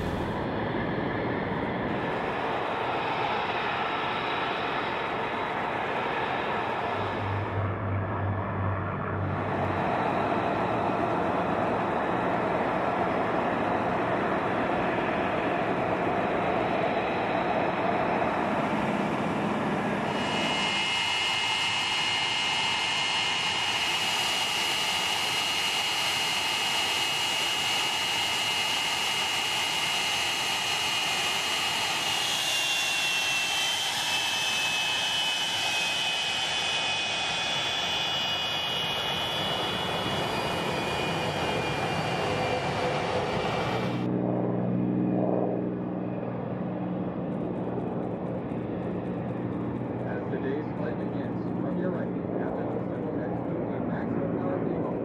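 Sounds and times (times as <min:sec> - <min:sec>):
jet engine whine and rush: 0:00.0 - 0:55.0.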